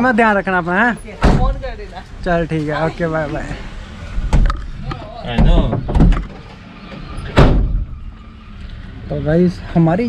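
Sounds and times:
car door slamming: 1.2s - 1.7s, 5.2s - 8.0s.

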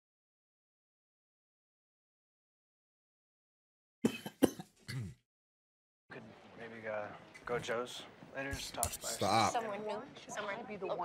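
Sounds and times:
man coughing: 4.0s - 5.2s.

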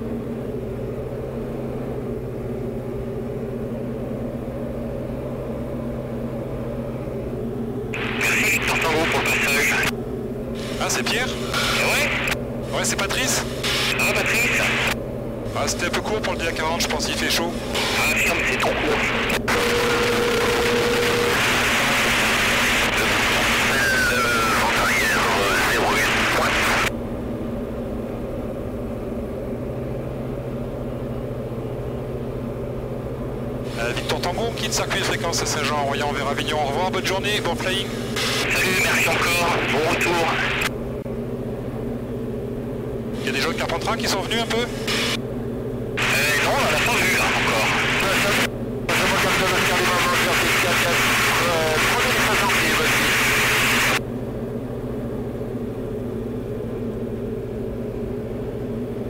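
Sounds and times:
aircraft engine droning: 0.0s - 59.0s
loud hissy broken sound: 8.0s - 9.9s, 10.6s - 26.9s, 33.7s - 40.7s, 43.1s - 45.2s, 46.0s - 54.0s.

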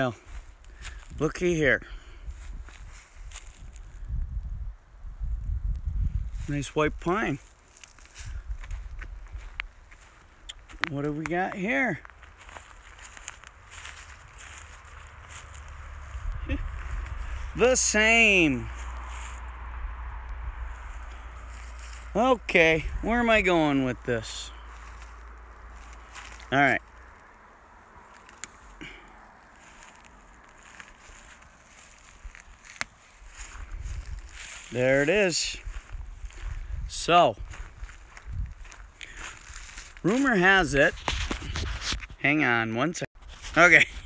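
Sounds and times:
footsteps on dry leaves: 0.0s - 1.2s, 2.1s - 4.1s, 7.3s - 19.6s, 20.6s - 42.1s, 43.2s - 43.8s
pine needles rustling: 2.0s - 4.1s, 7.3s - 42.2s
low rumble: 12.6s - 34.7s.

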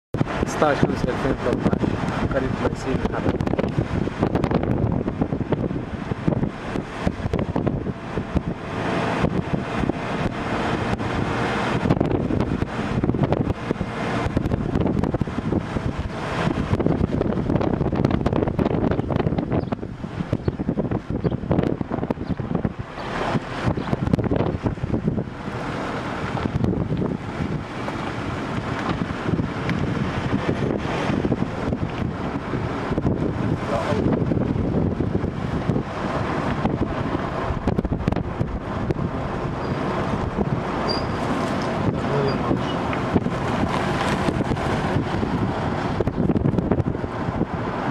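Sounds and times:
wind buffeting microphone: 0.1s - 47.9s
vehicle moving: 0.2s - 47.9s.

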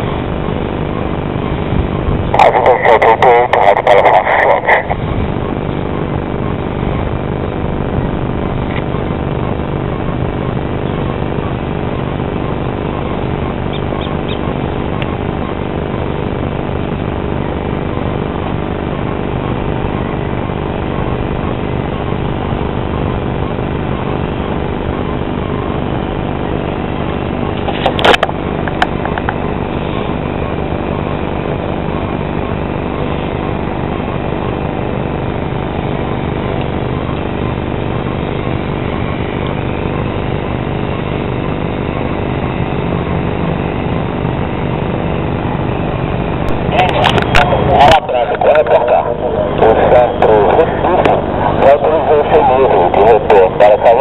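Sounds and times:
engine drone: 0.0s - 54.0s
steady tones: 0.0s - 54.0s.

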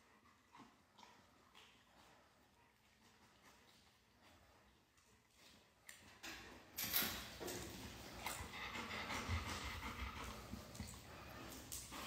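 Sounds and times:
dogs sniffing: 7.8s - 12.0s.

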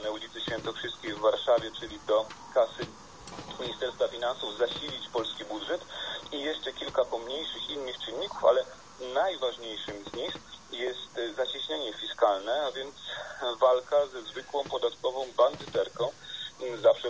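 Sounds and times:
speech from television speaker: 0.0s - 2.9s, 3.5s - 17.0s.

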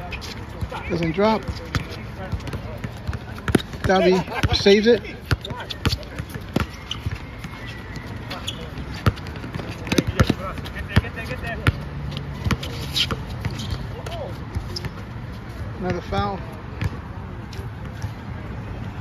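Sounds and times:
players' voices: 0.0s - 19.0s
basketball bouncing on hard court: 1.4s - 14.9s.

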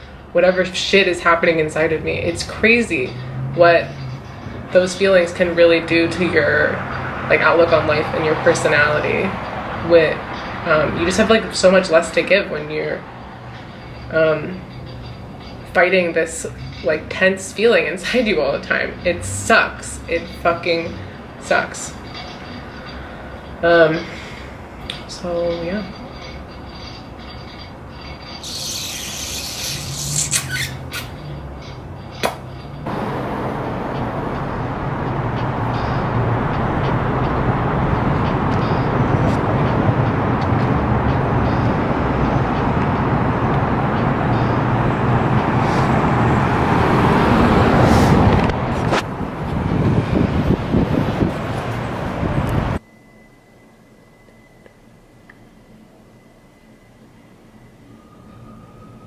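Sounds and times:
large vehicle engine hum: 0.0s - 52.8s
loud rushing traffic: 0.0s - 59.0s
brief high hiss: 28.4s - 31.2s.

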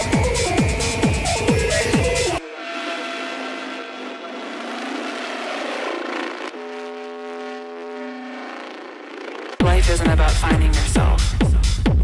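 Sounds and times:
kick drum and bass: 0.0s - 2.4s, 9.6s - 12.0s
held synth tones: 0.0s - 9.6s
sustained synth chords: 0.0s - 11.2s
rushing noise swell: 1.7s - 9.6s.

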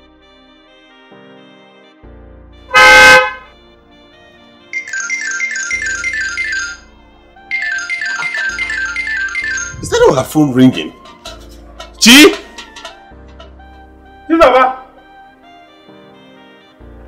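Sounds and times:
soft background music: 0.0s - 17.0s
car horn honk: 2.7s - 3.6s
phone ringtone chirps: 4.7s - 10.0s.

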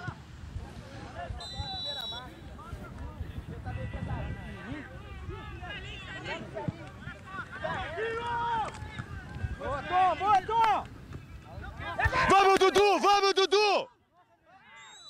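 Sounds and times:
people calling and chattering: 0.0s - 15.0s
short high whistle: 1.4s - 2.4s.

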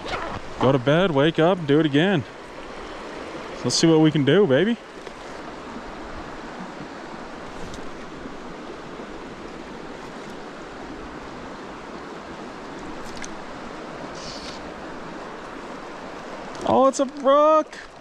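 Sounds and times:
stream rushing over rocks: 0.0s - 18.0s.

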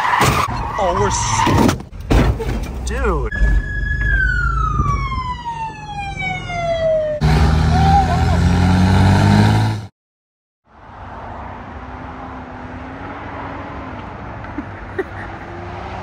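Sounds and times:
motorhome engine and tyre noise: 0.0s - 9.9s, 10.7s - 16.0s
police siren falling in pitch: 3.3s - 8.3s.

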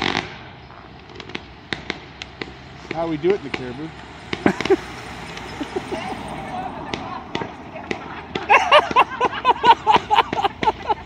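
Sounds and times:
firework pops and crackles: 0.0s - 5.9s, 6.8s - 9.0s
firework bangs: 0.0s - 11.0s.

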